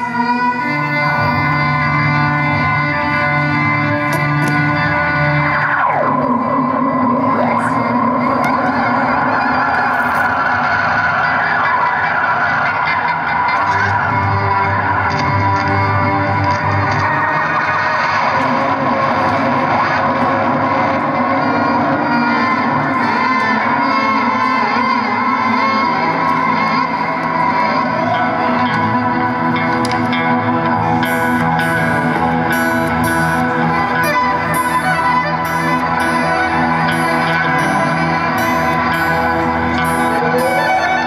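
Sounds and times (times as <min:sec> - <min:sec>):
live band guitars playing: 0:00.0 - 0:41.0.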